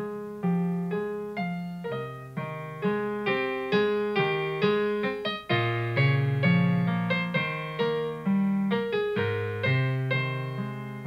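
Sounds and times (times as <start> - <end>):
slow gentle piano melody: 0.0 - 11.0.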